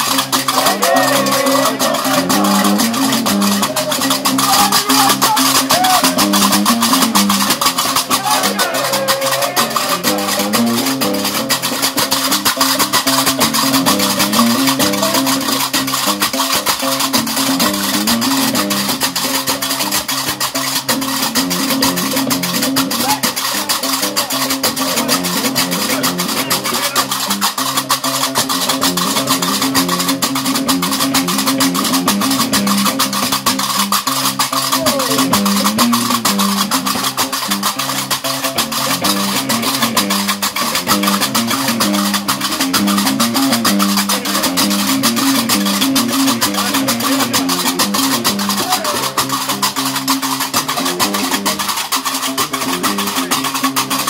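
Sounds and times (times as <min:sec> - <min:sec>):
bass lute playing low riff: 0:00.0 - 0:54.0
iron castanets clattering: 0:00.0 - 0:54.0.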